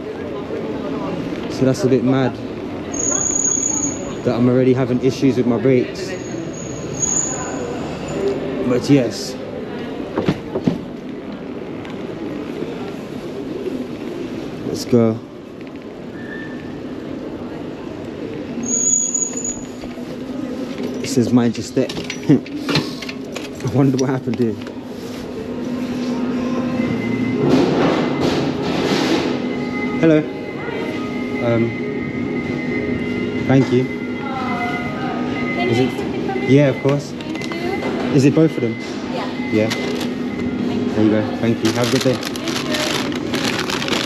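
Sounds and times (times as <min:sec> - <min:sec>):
murmur of distant voices: 0:00.0 - 0:44.0
station concourse background noise: 0:00.0 - 0:44.0
steady indoor hum: 0:10.8 - 0:44.0.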